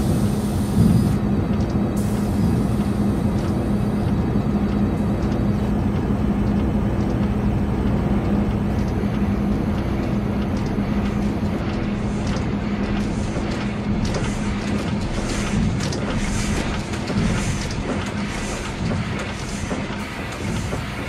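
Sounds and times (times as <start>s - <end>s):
mechanical rumble: 0.0s - 21.0s.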